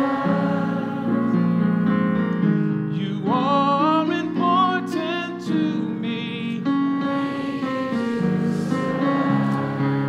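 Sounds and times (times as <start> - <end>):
keyboard chords: 0.0 - 10.0
man singing with vibrato: 2.9 - 9.4.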